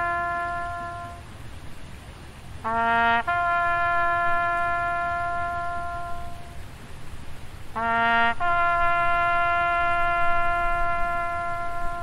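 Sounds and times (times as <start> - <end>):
trumpet playing long notes: 0.0 - 1.3, 2.6 - 6.6, 7.7 - 12.0.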